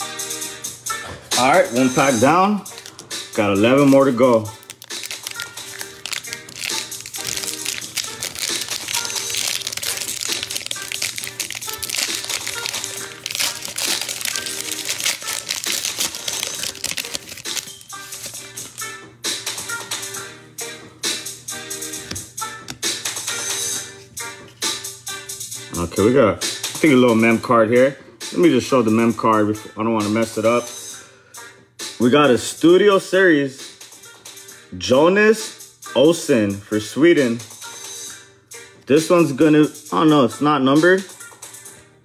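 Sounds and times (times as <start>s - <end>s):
background music: 0.0s - 42.0s
foil wrapper crinkling: 2.7s - 3.0s, 3.7s - 18.8s
cards clicking: 3.8s - 18.8s.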